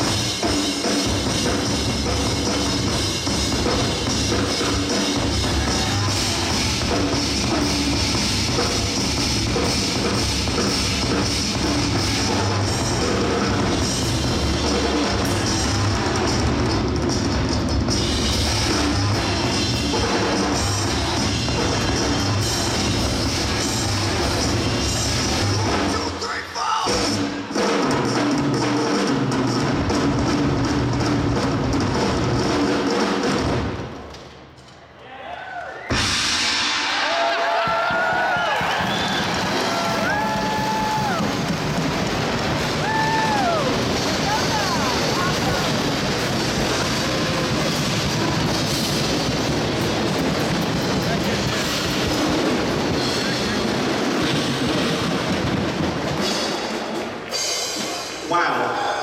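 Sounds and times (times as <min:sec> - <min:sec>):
rock drum solo: 0:00.0 - 0:34.0, 0:35.9 - 0:58.2
crowd shouting and whooping: 0:05.1 - 0:07.5, 0:35.0 - 0:41.8, 0:42.5 - 0:45.8
loud cymbal crash: 0:35.9 - 0:37.4
crowd applause: 0:36.6 - 0:58.2.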